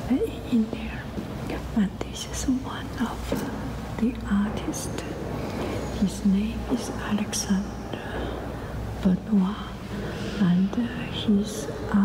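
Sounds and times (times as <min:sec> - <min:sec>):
person whispering: 0:00.0 - 0:12.0.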